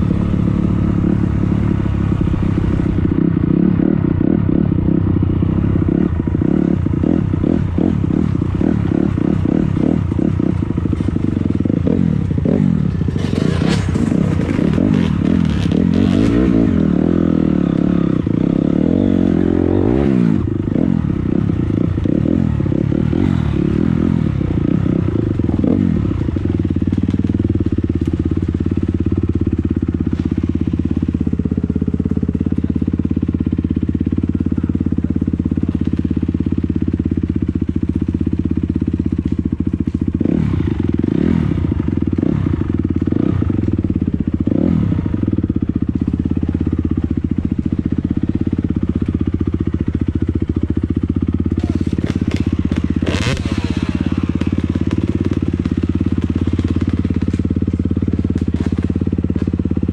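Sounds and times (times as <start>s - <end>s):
dirt bike engine revving: 0.0s - 27.9s, 39.1s - 43.6s, 51.4s - 59.9s.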